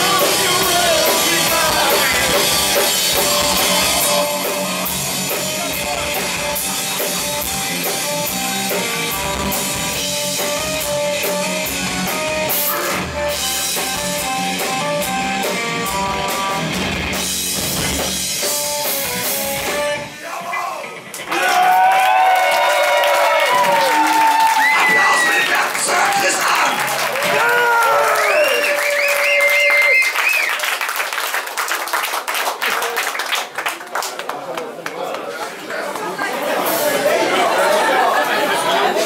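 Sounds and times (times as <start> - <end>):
live rock band playing: 0.0 - 21.9, 36.5 - 39.0
crowd cheering and whooping: 21.2 - 30.9.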